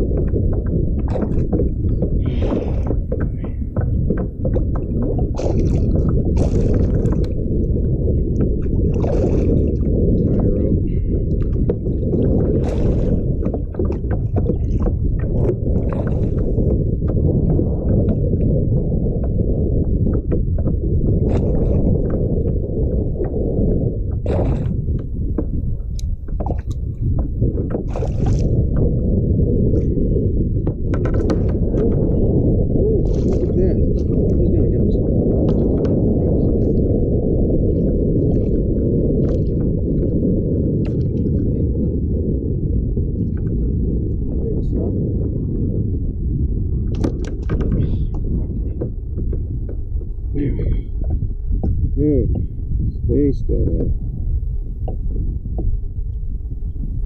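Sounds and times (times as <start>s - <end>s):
water splashes: 0.0s - 18.6s, 20.1s - 23.4s, 24.1s - 25.2s, 25.9s - 29.0s, 30.9s - 40.2s, 40.8s - 41.7s
wind rumble on microphone: 0.0s - 57.0s.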